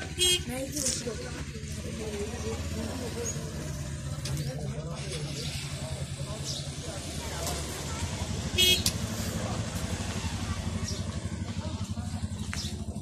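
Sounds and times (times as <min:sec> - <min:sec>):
vehicle engine rumbling: 0:00.0 - 0:13.0
loud horn toot: 0:08.5 - 0:08.9.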